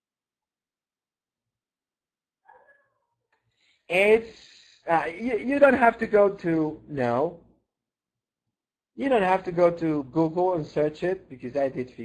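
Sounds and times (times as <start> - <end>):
man speaking: 3.9 - 7.4, 9.0 - 12.0.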